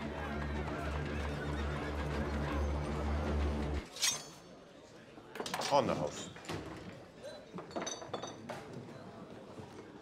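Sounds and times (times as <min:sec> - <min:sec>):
indistinct crowd voices: 0:00.0 - 0:05.3.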